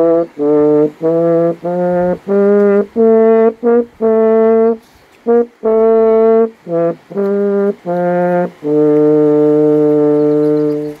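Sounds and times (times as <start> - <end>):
french horn holding low note: 0.0 - 11.0.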